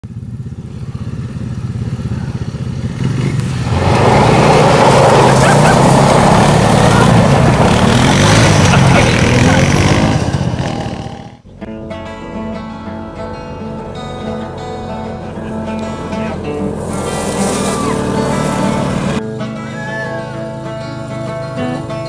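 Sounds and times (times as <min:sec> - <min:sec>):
small off-road engines running: 0:00.0 - 0:11.6, 0:12.2 - 0:22.0.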